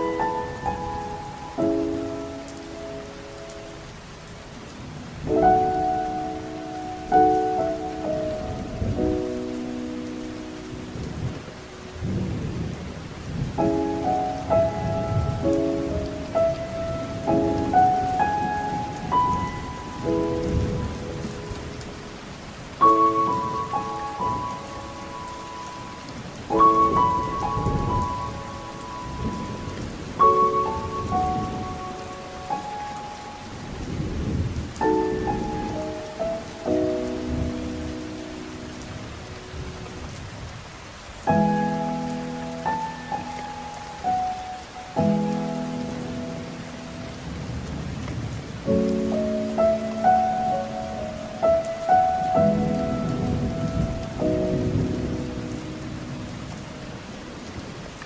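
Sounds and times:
heavy rain: 0.0s - 58.0s
slow solo piano: 0.0s - 58.0s
low rolling thunder: 10.8s - 21.6s, 26.5s - 32.7s, 33.4s - 38.0s, 45.0s - 49.8s, 51.4s - 56.6s.

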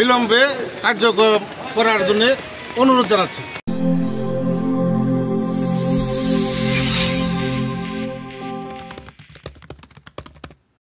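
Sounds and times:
keyboard typing clicks: 8.6s - 10.6s.

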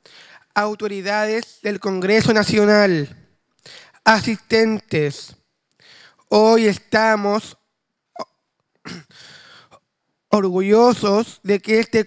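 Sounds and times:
man's hiccup-like throat catch: 8.1s - 9.1s.

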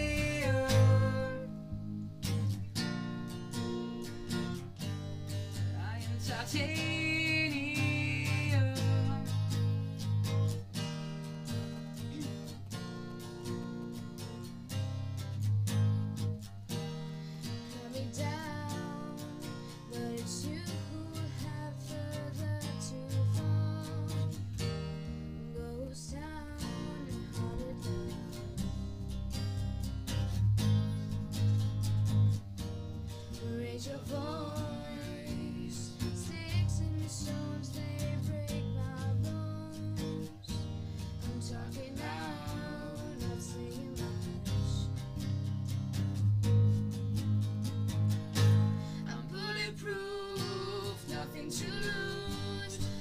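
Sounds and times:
acoustic guitar strumming chords: 0.0s - 53.0s.

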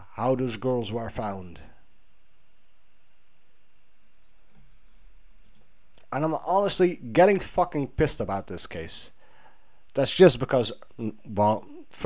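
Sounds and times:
low background hiss and hum: 0.0s - 12.0s.

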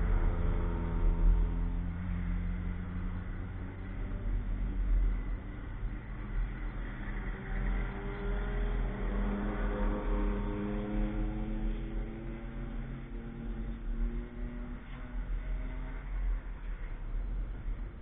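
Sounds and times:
steady low rumble: 0.0s - 6.6s.

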